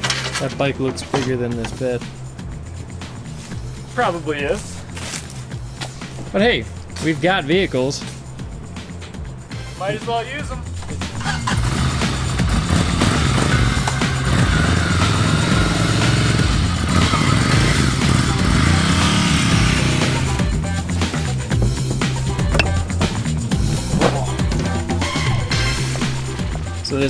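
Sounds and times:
background music: 0:00.0 - 0:27.0
motorcycle engine revving: 0:11.1 - 0:24.1.

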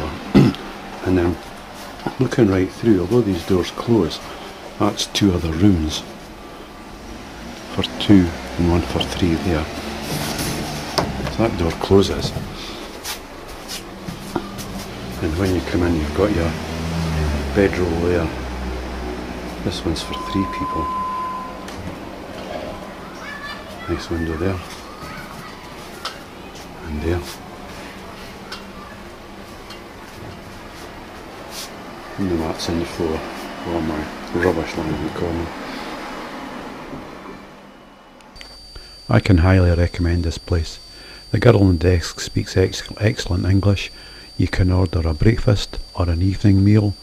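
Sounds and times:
handheld recording background noise: 0:00.0 - 0:47.0
steady high-pitched whine: 0:00.0 - 0:47.0.

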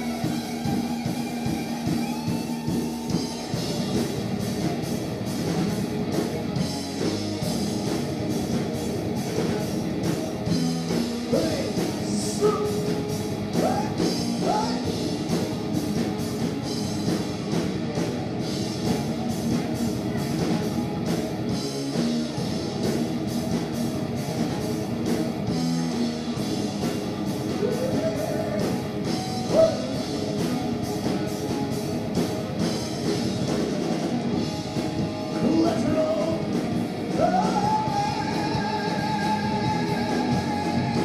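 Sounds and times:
drum kit beat: 0:00.0 - 0:41.0
electric guitars: 0:00.0 - 0:41.0
man singing: 0:11.3 - 0:15.0, 0:27.5 - 0:28.8, 0:29.4 - 0:30.0, 0:35.3 - 0:41.0.

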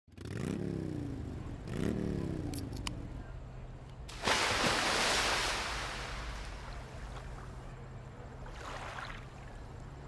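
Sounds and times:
engine revving: 0:00.1 - 0:02.8.

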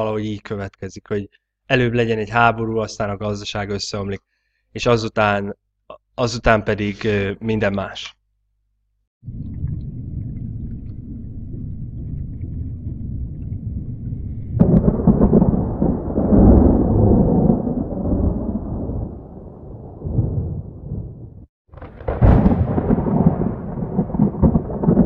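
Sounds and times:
low rumbling: 0:09.2 - 0:21.5.

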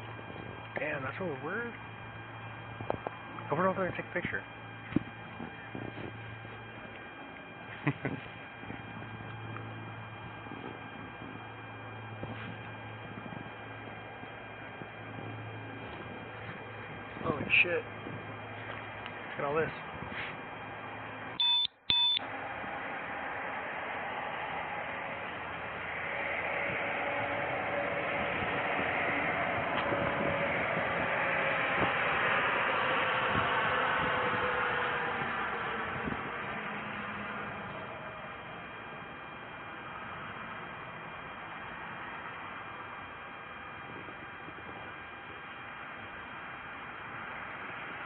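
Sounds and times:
broad rushing noise: 0:00.0 - 0:21.4, 0:22.2 - 0:42.9
electronic double beep: 0:21.4 - 0:22.2.

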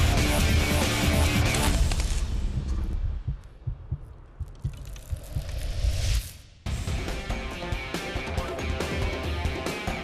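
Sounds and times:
low heartbeat-like thuds: 0:02.3 - 0:06.0.

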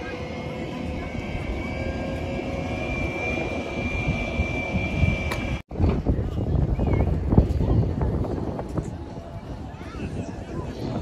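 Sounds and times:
aircraft engine drone: 0:00.0 - 0:05.6
high thin engine whine: 0:00.0 - 0:05.6.

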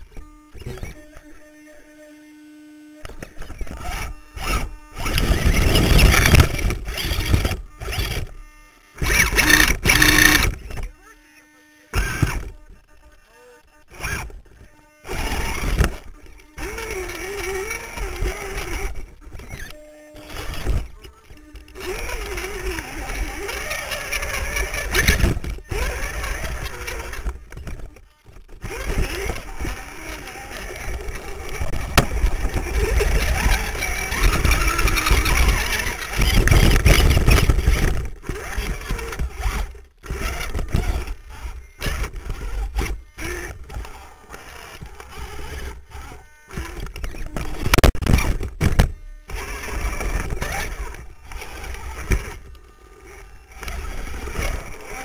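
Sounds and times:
electric motors whining: 0:00.0 - 0:55.0.

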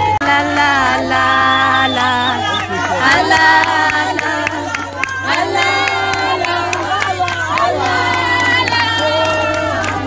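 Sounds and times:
crowd singing and cheering: 0:00.0 - 0:10.0
hand claps: 0:00.2 - 0:10.0.

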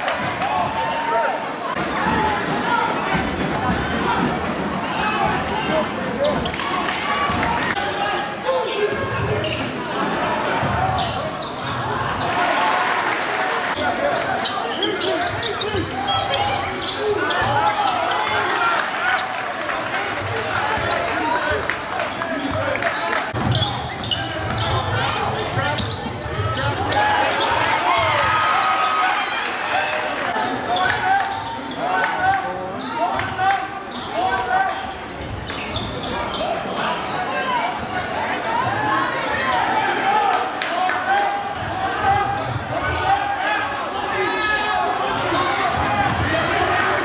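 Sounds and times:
crowd voices echoing: 0:00.0 - 0:47.0.

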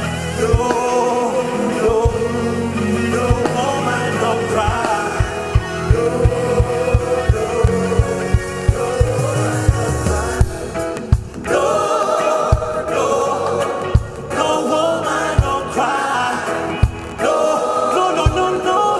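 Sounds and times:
live band music: 0:00.0 - 0:18.9
voices singing: 0:00.0 - 0:18.9
steady drum beat: 0:00.4 - 0:18.8.

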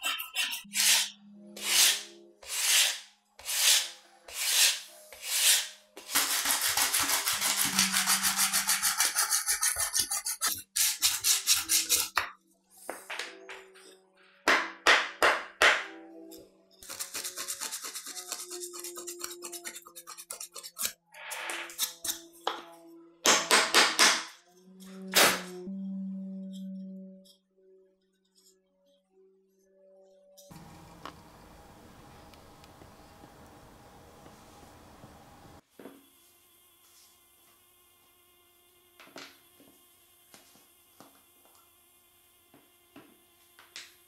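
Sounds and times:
sandpaper rubbing on wood: 0:00.4 - 0:12.2, 0:16.8 - 0:21.0.

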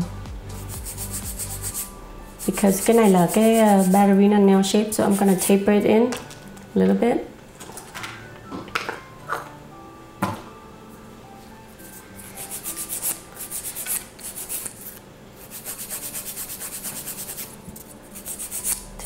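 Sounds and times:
nail file rasping: 0:00.6 - 0:04.0, 0:11.8 - 0:19.0.

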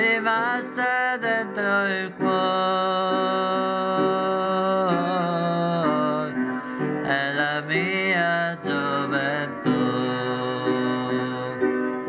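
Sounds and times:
man singing a slow ballad: 0:00.0 - 0:12.0
piano chords: 0:00.0 - 0:12.0.

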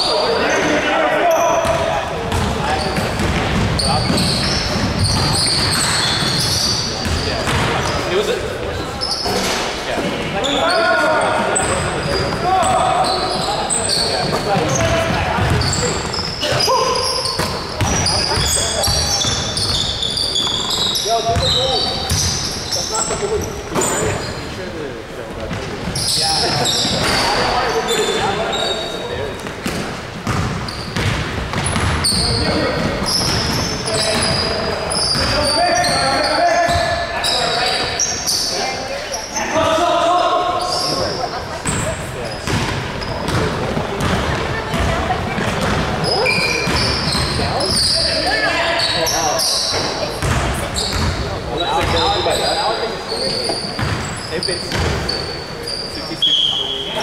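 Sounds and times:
sneaker squeaks: 0:00.0 - 0:24.6, 0:25.3 - 0:57.0
players calling out: 0:00.0 - 0:57.0
basketball bouncing on hardwood: 0:29.6 - 0:33.6, 0:42.4 - 0:46.0, 0:50.2 - 0:51.2.

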